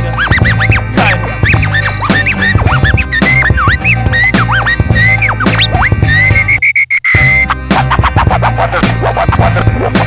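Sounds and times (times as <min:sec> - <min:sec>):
hip-hop beat with bass and drums: 0:00.0 - 0:10.0
turntable scratching: 0:00.0 - 0:10.0.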